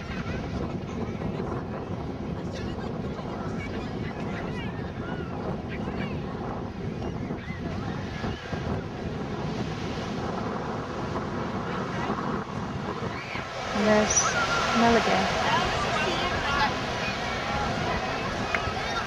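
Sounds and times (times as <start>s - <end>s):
faint voices: 0.0s - 9.1s, 11.3s - 19.0s
surf washing onto beach: 0.0s - 19.0s
wind on microphone: 0.0s - 19.0s.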